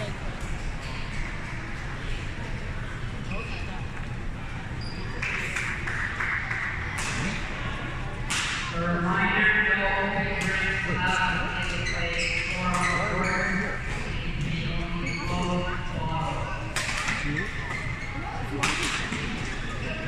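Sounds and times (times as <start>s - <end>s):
rackets hitting shuttlecock: 8.2s - 8.7s.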